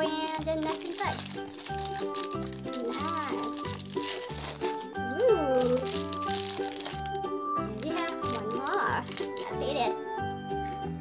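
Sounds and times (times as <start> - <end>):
foil wrapper crinkling: 0.0 - 10.0
children's background music: 0.0 - 11.0.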